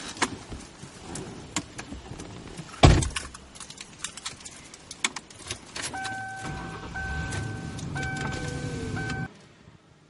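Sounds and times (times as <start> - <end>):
car engine starting and running: 4.9 - 9.9
car warning chime: 5.9 - 9.3.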